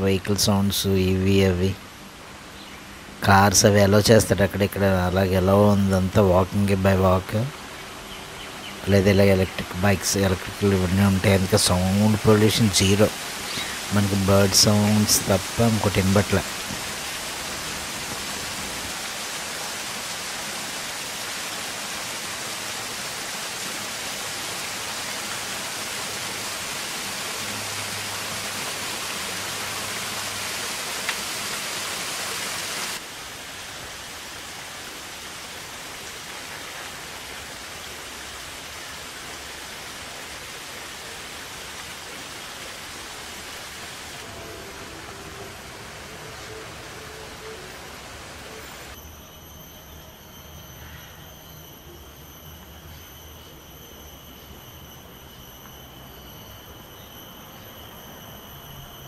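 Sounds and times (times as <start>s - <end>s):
water falling into a pond: 10.0s - 44.3s.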